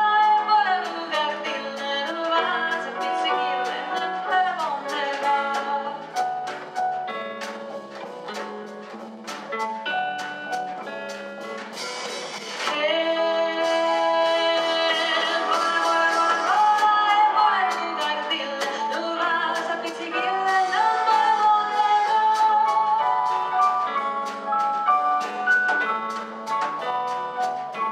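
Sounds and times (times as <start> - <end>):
live jazz band playing: 0.0 - 27.9
woman singing long notes: 12.7 - 23.2.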